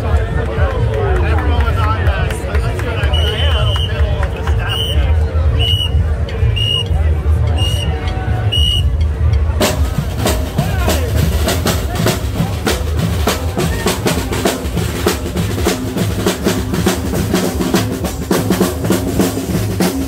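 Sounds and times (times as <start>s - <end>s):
crowd chatter: 0.0s - 20.0s
snare and bass drums playing: 3.0s - 20.0s.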